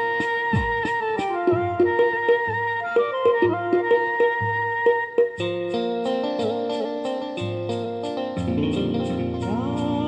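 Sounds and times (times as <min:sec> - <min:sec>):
ticking beat: 0:00.0 - 0:04.4, 0:05.2 - 0:10.0
plucked string melody: 0:00.0 - 0:10.0.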